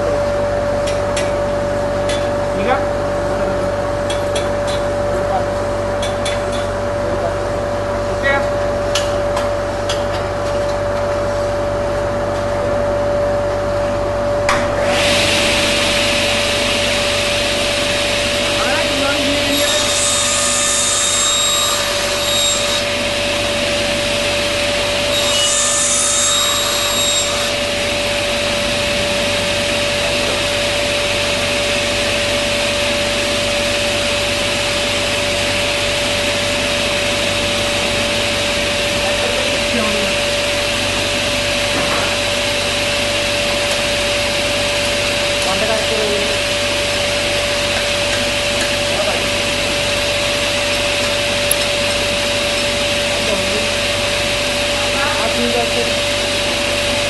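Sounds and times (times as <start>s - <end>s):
table saw running: 13.6s - 57.0s.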